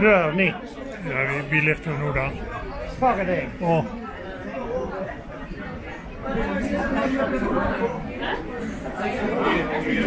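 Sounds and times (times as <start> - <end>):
spectators chatting: 0.0 - 10.0.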